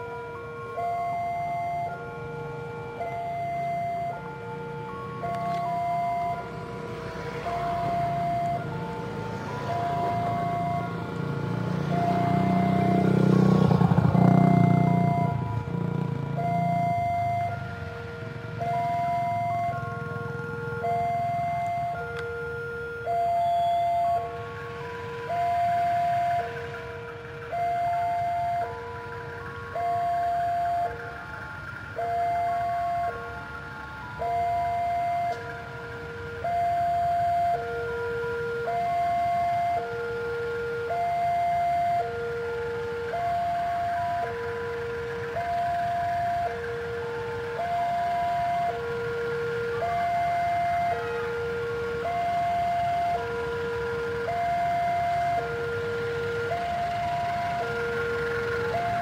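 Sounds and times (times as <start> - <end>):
level crossing warning alarm: 0.0 - 59.0.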